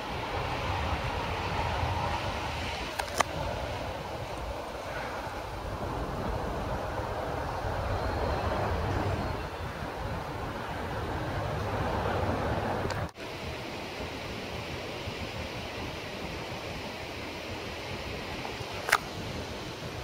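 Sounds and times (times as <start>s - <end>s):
outdoor rumble and hiss: 0.0s - 20.0s
sharp clicks: 2.9s - 3.3s.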